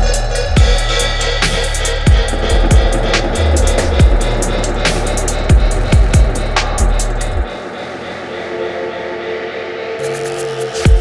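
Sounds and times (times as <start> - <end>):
deep bass line: 0.0 - 8.3
ticking hi-hats: 0.0 - 8.3
dub music: 0.0 - 11.0
kick drum: 2.0 - 7.5.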